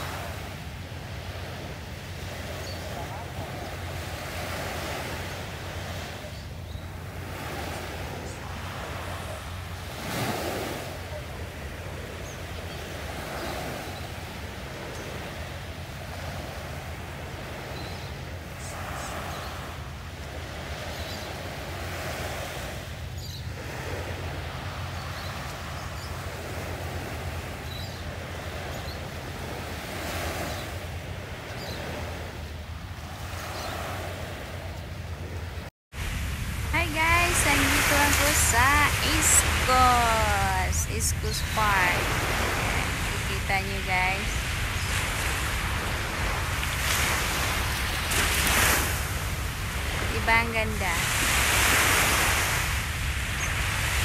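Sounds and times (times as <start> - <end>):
small waves washing on shore: 0.0 - 54.0
wind rumbling on microphone: 0.0 - 54.0.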